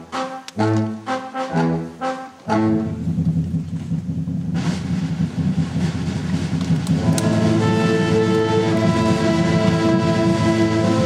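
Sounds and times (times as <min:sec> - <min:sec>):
wind band sustained low chord: 0:00.0 - 0:03.9, 0:04.5 - 0:11.0.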